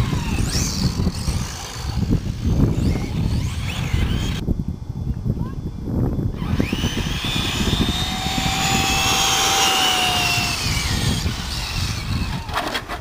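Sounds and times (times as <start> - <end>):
toy car motor whine: 0.0 - 4.4, 6.3 - 12.7.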